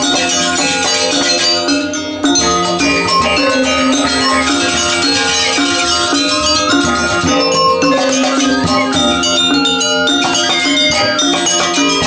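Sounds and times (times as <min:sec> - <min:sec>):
barrel drums: 0:00.0 - 0:12.0
metallophones struck in fast patterns: 0:00.0 - 0:12.0.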